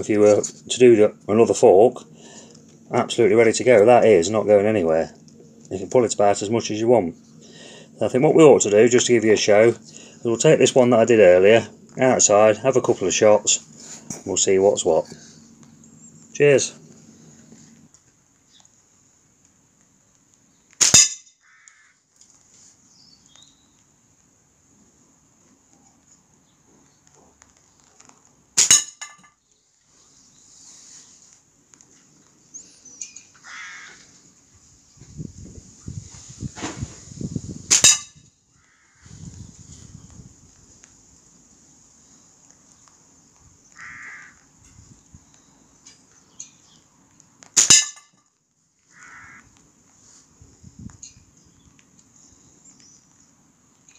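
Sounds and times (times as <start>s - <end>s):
slingshot crack: 20.8s - 21.3s, 47.5s - 48.1s.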